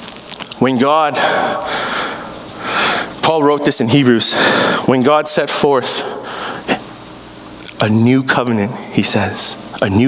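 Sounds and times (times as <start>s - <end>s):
man breathing audibly: 1.2s - 3.2s, 4.3s - 4.9s, 6.2s - 6.8s.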